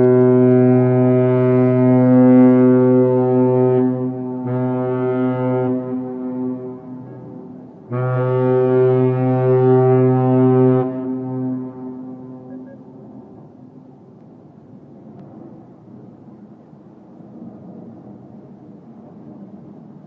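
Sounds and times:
ship horn blasts: 0:00.0 - 0:13.7.

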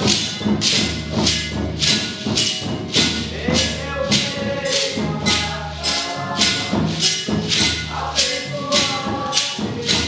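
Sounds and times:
voices singing: 0:03.2 - 0:10.0.

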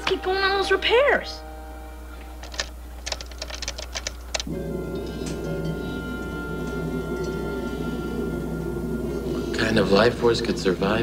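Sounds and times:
background music with held tones: 0:00.0 - 0:11.0
keystrokes on a keyboard: 0:02.4 - 0:04.5.

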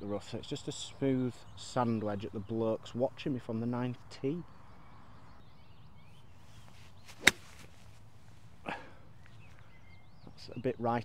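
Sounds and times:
golf club striking ball: 0:07.1 - 0:07.7.

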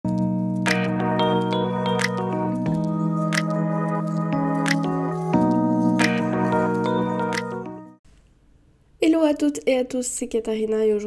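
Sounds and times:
jingle music sustained chords: 0:00.7 - 0:08.0.

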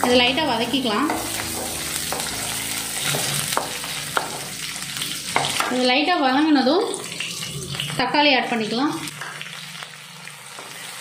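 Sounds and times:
wooden spatula knocking on pan: 0:00.0 - 0:04.5
food sizzling in hot oil: 0:00.0 - 0:11.0.

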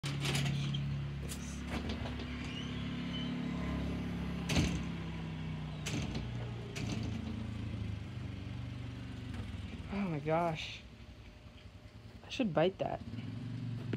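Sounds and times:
sharp knocks and handling bumps: 0:00.0 - 0:02.6.

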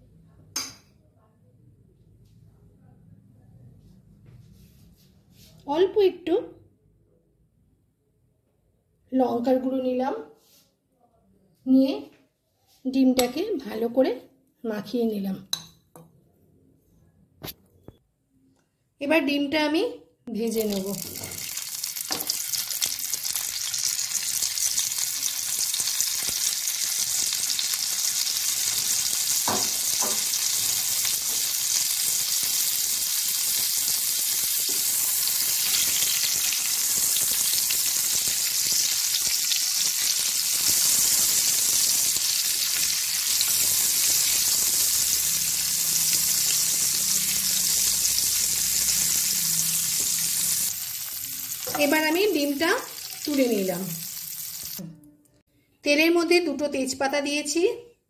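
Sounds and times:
eggs sizzling in hot oil: 0:20.5 - 0:54.8.

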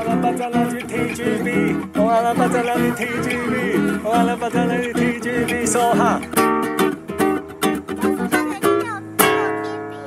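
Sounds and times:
guitar chord ringing: 0:00.0 - 0:10.0
guitar plucked notes: 0:00.0 - 0:10.0.

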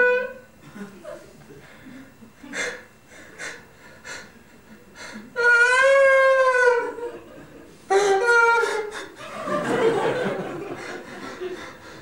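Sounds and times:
man holding wordless vowel tone: 0:07.9 - 0:09.2.

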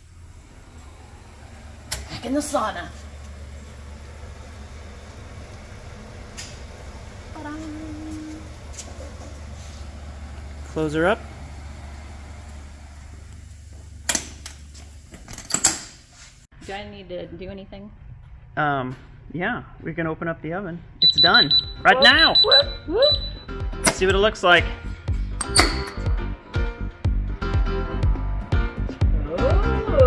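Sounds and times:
low hum of shop equipment: 0:00.0 - 0:16.8, 0:17.7 - 0:26.4
latches clanking: 0:23.8 - 0:24.1, 0:25.3 - 0:26.1
steel door banging shut: 0:25.4 - 0:26.1.

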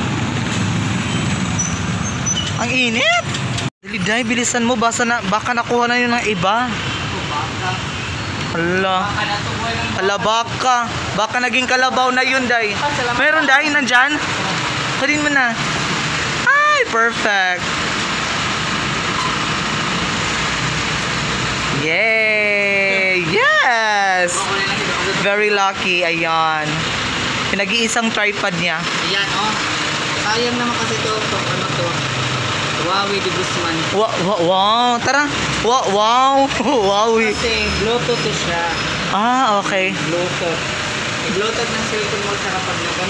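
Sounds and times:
motor vehicle engine rumbling: 0:00.0 - 0:43.0
street traffic noise: 0:00.0 - 0:43.0.

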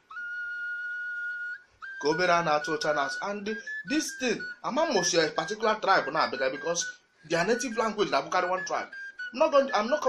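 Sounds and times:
high whistle-like tone: 0:00.0 - 0:10.0.

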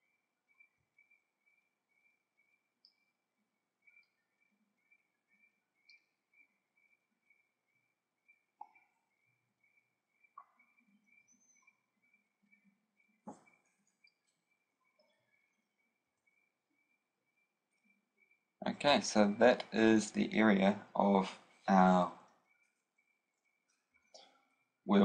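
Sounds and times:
faint high whine: 0:00.0 - 0:25.0.

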